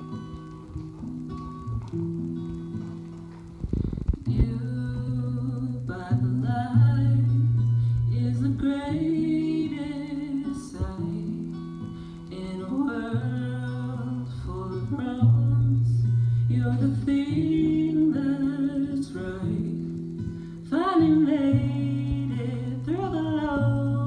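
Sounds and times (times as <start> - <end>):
person singing: 4.2 - 24.0.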